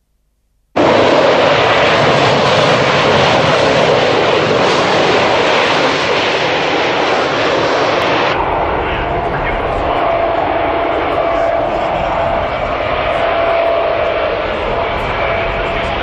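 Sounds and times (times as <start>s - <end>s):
jet engines roaring: 0.8s - 16.0s
steady engine whine: 0.8s - 16.0s.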